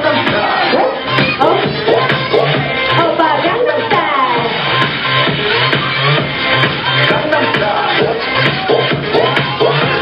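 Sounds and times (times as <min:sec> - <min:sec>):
crowd shouting and cheering: 0:00.0 - 0:10.0
dance music with steady beat: 0:00.0 - 0:10.0.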